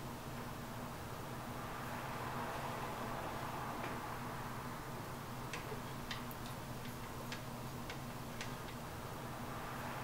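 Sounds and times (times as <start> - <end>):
record surface hum and hiss: 0.0 - 10.0.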